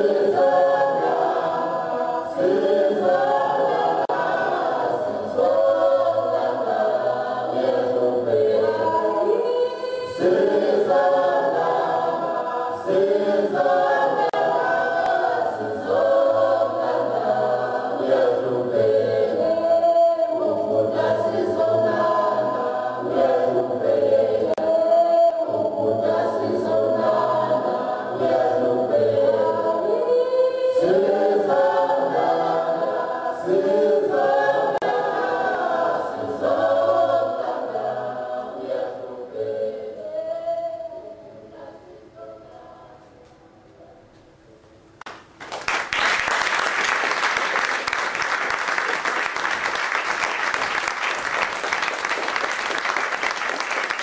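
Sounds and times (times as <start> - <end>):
choir singing: 0.0 - 43.2.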